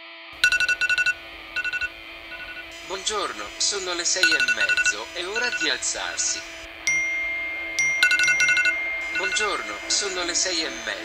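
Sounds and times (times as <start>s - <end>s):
electronic ringer trilling: 0.4s - 11.0s
sustained synth chord: 0.4s - 11.0s.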